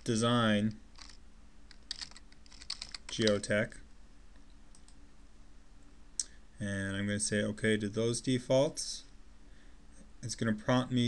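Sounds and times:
computer keyboard typing: 0:00.9 - 0:03.5.

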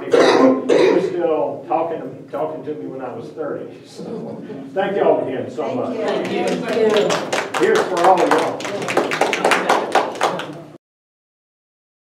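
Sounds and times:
small group clapping: 0:06.0 - 0:10.8.

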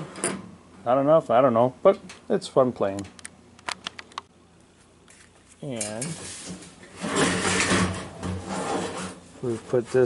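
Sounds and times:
sheet metal scraping: 0:05.8 - 0:10.0.

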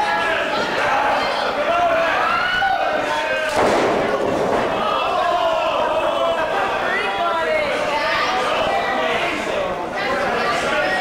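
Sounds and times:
shouting voices: 0:00.0 - 0:11.0.

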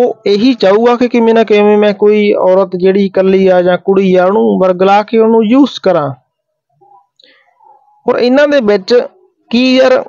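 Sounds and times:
man speaking: 0:00.0 - 0:06.2, 0:07.6 - 0:10.0.

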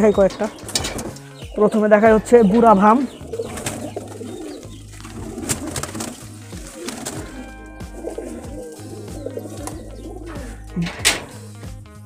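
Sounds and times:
pigeons cooing: 0:00.0 - 0:11.6.

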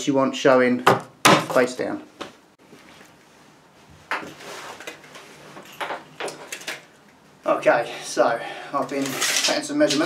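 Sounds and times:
rustling scrape of microphone handling: 0:04.2 - 0:05.8.

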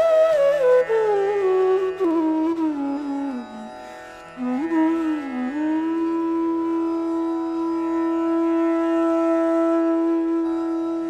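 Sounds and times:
bamboo flute long note: 0:00.0 - 0:03.8, 0:04.4 - 0:11.0.

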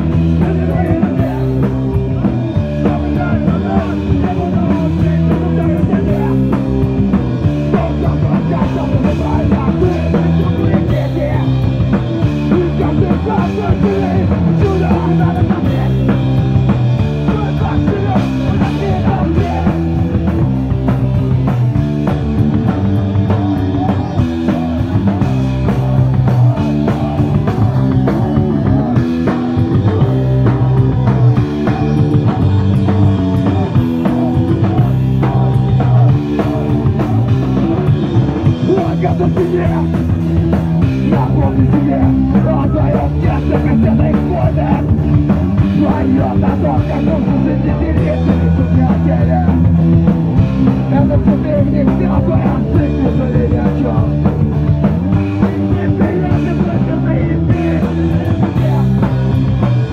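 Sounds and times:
bass guitar: 0:00.0 - 0:59.9
distorted electric guitars: 0:00.0 - 0:59.9
drum kit pounding: 0:00.0 - 0:59.9.

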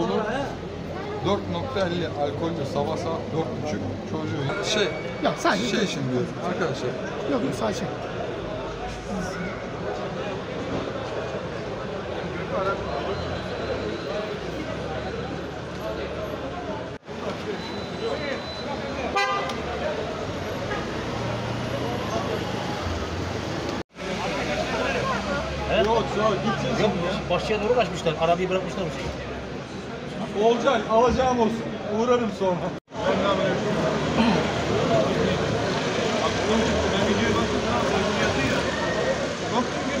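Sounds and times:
crowd chatter: 0:00.0 - 0:40.0
indistinct voices talking: 0:00.0 - 0:40.0
street traffic: 0:00.0 - 0:40.0
vehicle horn toot: 0:19.1 - 0:19.6.

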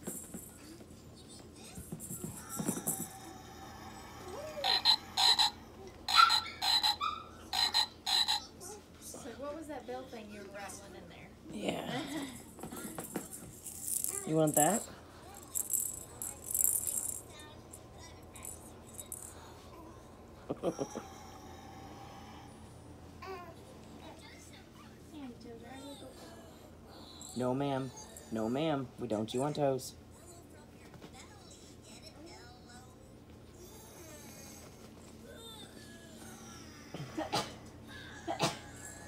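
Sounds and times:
rattle ball jingling: 0:00.0 - 0:00.7, 0:01.8 - 0:03.2, 0:12.2 - 0:19.4
toy squeak: 0:04.6 - 0:08.5.

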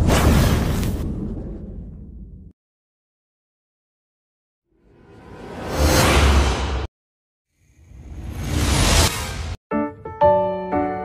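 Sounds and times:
whoosh sound effect: 0:08.0 - 0:09.6.

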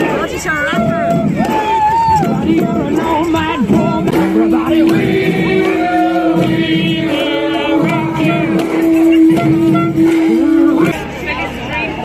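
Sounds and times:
crowd singing along to music: 0:00.0 - 0:11.2.

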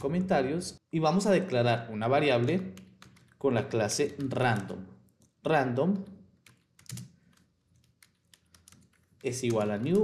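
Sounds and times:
keyboard typing: 0:02.4 - 0:10.0.

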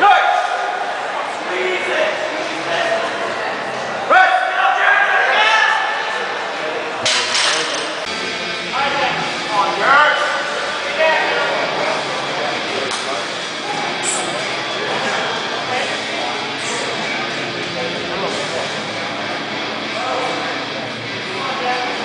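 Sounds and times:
people shouting in a hall: 0:00.0 - 0:06.4.

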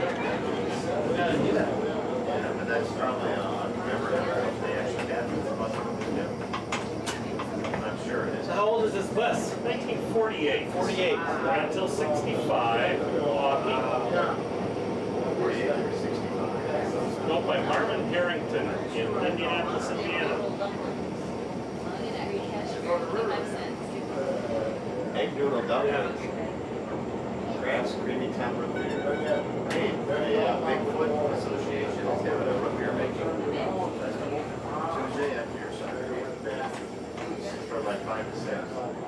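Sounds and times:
bus engine drone: 0:00.0 - 0:39.0
passengers talking indistinctly: 0:00.0 - 0:39.0.

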